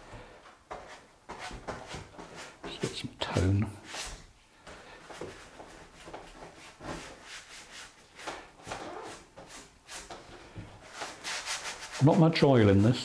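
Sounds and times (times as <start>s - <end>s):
brush scrubbing paint on wood: 10.8s - 13.0s.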